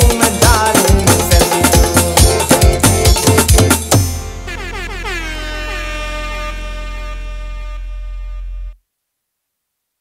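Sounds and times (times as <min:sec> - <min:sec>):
deep bass drone: 0:04.1 - 0:08.8.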